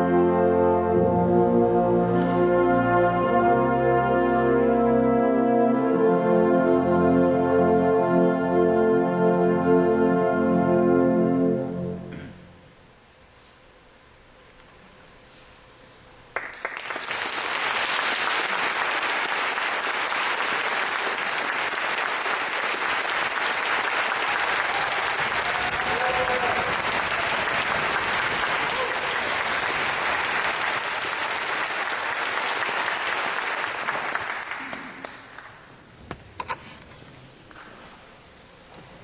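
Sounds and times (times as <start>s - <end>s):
audience applauding: 16.3s - 35.7s.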